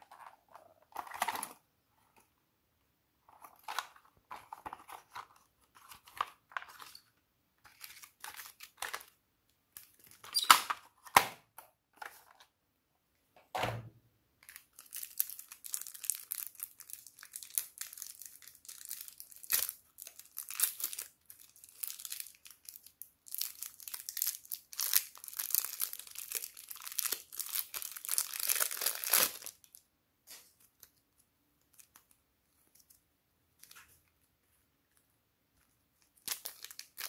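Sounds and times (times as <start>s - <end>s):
plastic packet crinkling and tearing: 0.0s - 1.6s, 7.6s - 11.1s, 14.4s - 29.8s, 36.0s - 37.0s.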